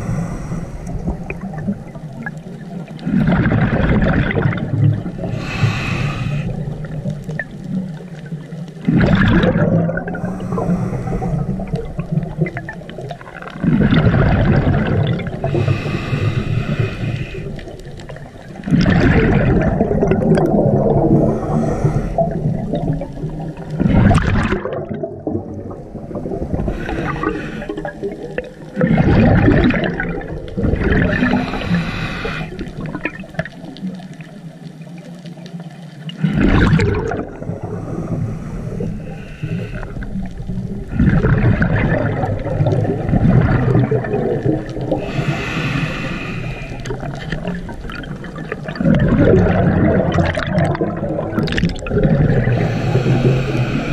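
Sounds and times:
regulator hiss on inhale: 0.0s - 1.4s, 5.2s - 6.8s, 10.2s - 11.8s, 15.4s - 17.9s, 21.1s - 22.6s, 26.6s - 28.2s, 31.2s - 32.8s, 37.4s - 40.4s, 44.8s - 47.4s, 52.5s - 53.9s
rush of bubbles: 0.0s - 53.9s.

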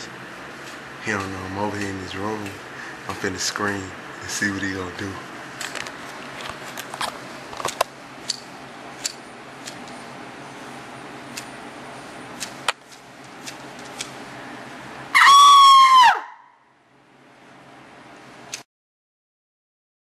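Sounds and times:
man screaming: 15.1s - 16.5s.

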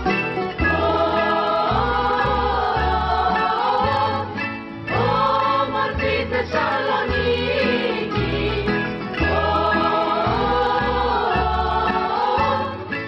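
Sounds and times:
bouzoukis guitars and double bass: 0.0s - 13.0s
choir singing in unison: 0.5s - 13.0s.

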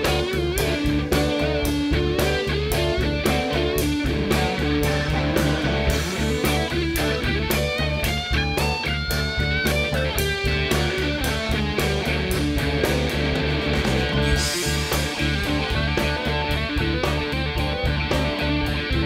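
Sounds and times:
bass guitar: 0.0s - 19.0s
lead electric guitar: 0.0s - 19.0s
steady drum beat: 0.0s - 19.0s.

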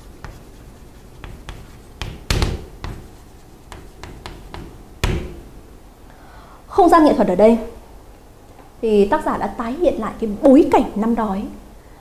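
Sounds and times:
pen scratching on paper: 0.0s - 4.4s.

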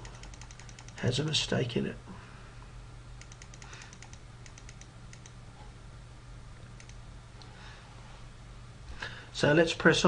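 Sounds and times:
computer keyboard typing: 0.0s - 1.0s, 3.2s - 5.4s, 6.8s - 7.0s
low steady hum: 0.0s - 10.0s.

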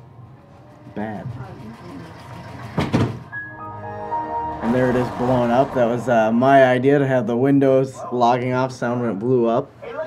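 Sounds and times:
background music: 3.1s - 7.2s.

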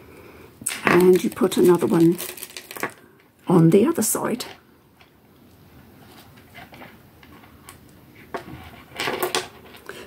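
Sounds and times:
beads clicking and rustling: 0.6s - 3.1s.

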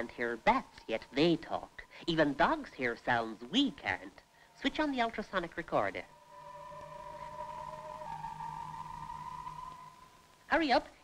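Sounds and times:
steady pure electronic tones: 0.0s - 10.6s
low hum: 6.0s - 10.4s.

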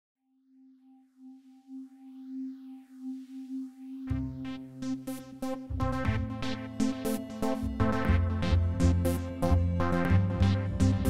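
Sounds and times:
held musical tone pulsing: 1.1s - 11.0s.

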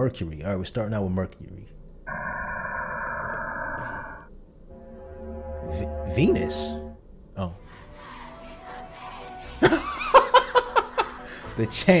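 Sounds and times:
electronic drone of stacked tones: 2.1s - 7.0s
lower deeper drone: 2.1s - 7.0s.

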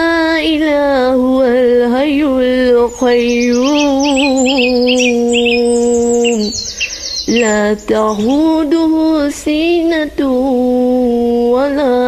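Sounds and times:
woman reciting: 0.0s - 12.0s
bird chirps: 2.7s - 9.2s.

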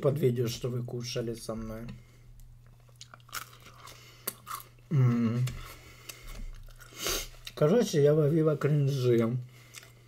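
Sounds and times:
chewing crunchy food: 2.6s - 4.8s, 5.4s - 7.6s, 9.6s - 10.0s
person humming mmm: 4.9s - 5.7s.

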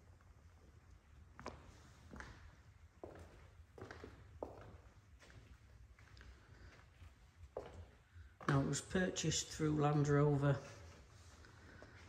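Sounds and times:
footsteps walking slowly: 1.3s - 8.8s.

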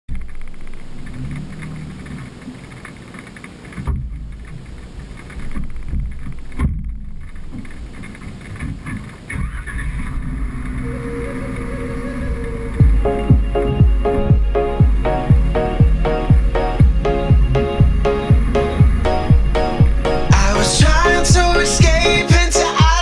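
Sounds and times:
low wind rumble: 3.8s - 22.3s
sudden thumps: 3.8s - 23.0s.

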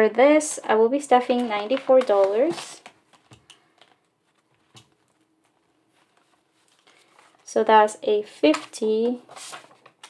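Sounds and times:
paper banknotes rustling: 1.2s - 7.5s, 8.4s - 10.0s.

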